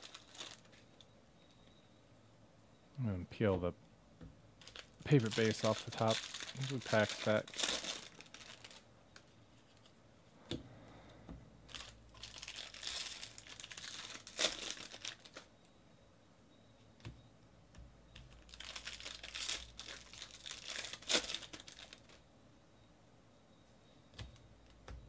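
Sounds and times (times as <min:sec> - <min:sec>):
papery rustling of cards: 0:00.0 - 0:00.8, 0:04.6 - 0:08.8, 0:11.7 - 0:15.5, 0:18.3 - 0:22.2.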